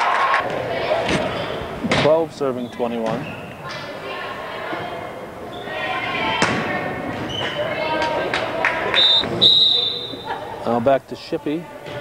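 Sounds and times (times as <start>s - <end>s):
referee's whistle blasts: 9.0s - 10.2s.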